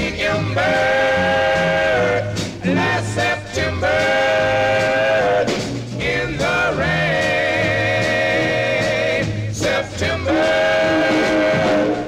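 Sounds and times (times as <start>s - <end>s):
bass notes: 0.0s - 12.0s
vocal quartet singing harmony: 0.0s - 12.0s.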